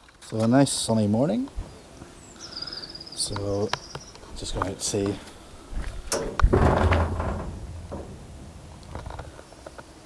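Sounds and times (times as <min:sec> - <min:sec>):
rumbling scuffle: 0:05.8 - 0:09.4.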